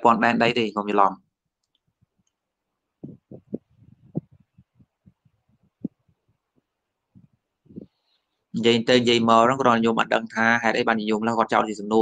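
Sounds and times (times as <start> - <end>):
man speaking: 0.0 - 1.3, 8.5 - 12.0.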